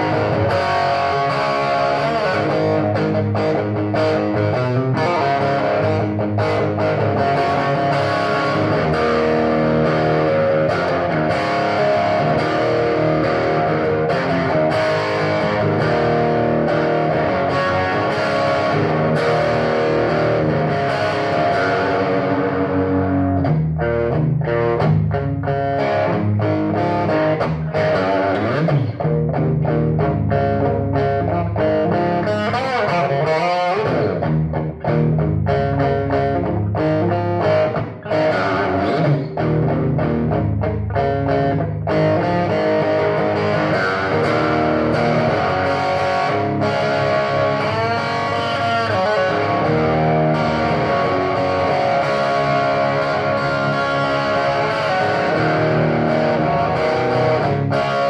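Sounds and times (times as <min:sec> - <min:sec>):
electric guitar strumming chords: 0:00.0 - 0:58.0.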